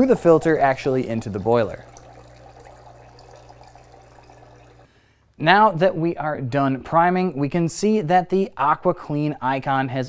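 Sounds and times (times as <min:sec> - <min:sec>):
espresso machine pump humming: 0:00.0 - 0:04.9
water running into metal pitcher: 0:00.0 - 0:04.9.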